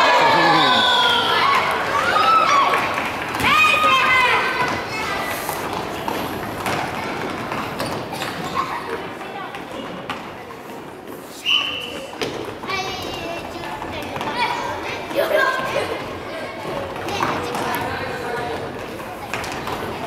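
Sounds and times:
children shouting in a hall: 0.0s - 5.5s.

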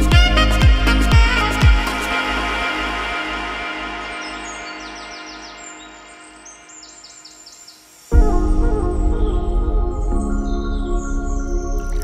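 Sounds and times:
background music: 0.0s - 7.4s, 8.0s - 12.0s
birds chirping: 3.8s - 8.1s.

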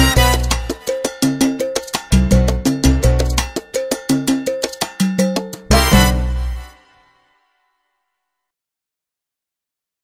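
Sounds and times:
cowbell strokes: 0.0s - 6.5s
salsa band playing: 0.0s - 7.1s.

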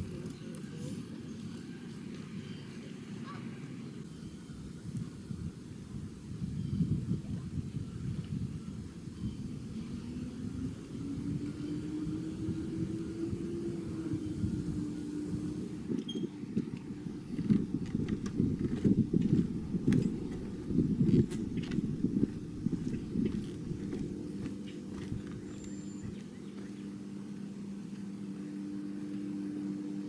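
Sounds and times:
steady low rumble: 4.0s - 30.0s
low hum rising in pitch: 7.8s - 30.0s
footsteps on wooden bridge: 16.6s - 26.8s.

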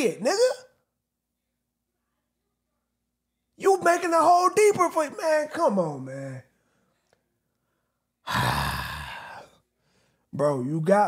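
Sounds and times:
man sighing: 8.2s - 9.6s.

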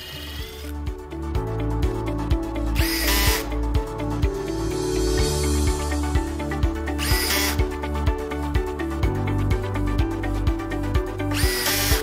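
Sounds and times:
cordless drill drilling wood: 0.0s - 0.7s, 2.8s - 3.5s, 7.0s - 7.6s, 11.3s - 12.0s
background music: 0.0s - 12.0s.

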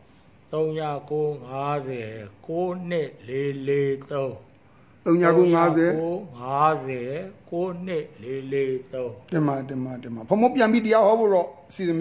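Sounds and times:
man talking: 0.5s - 12.0s.

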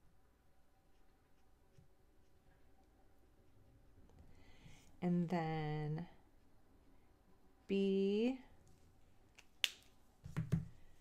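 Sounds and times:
marker knocking on table: 10.2s - 10.7s.

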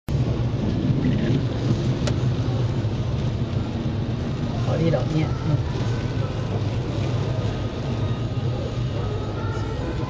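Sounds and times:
heavy rain on car roof: 0.1s - 10.0s.

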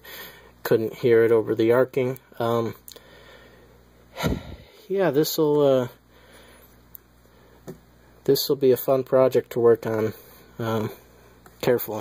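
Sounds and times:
faint background hum: 0.0s - 12.0s
short noisy breath: 3.0s - 4.9s
person speaking: 11.6s - 12.0s.

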